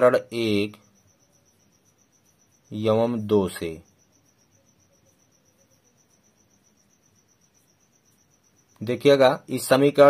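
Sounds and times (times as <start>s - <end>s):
man speaking: 0.0s - 0.8s, 2.7s - 3.9s, 8.8s - 10.0s
faint high-pitched trill: 0.0s - 10.0s.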